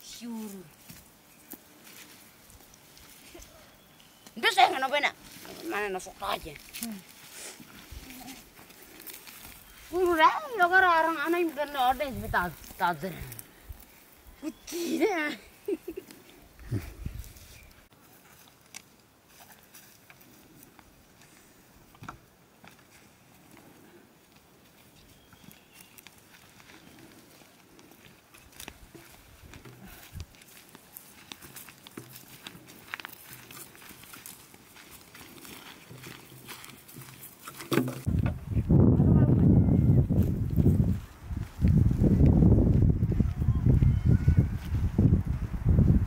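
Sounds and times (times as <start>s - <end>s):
footsteps on dry dirt path: 0.0s - 14.7s, 15.4s - 38.9s, 39.6s - 46.0s
greens rustling being handled: 0.0s - 16.6s, 22.6s - 38.1s.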